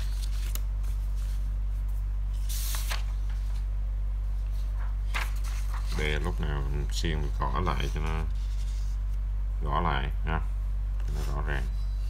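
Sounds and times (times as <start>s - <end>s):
steady low hum: 0.0s - 12.0s
paper sliding on desk: 2.4s - 3.2s.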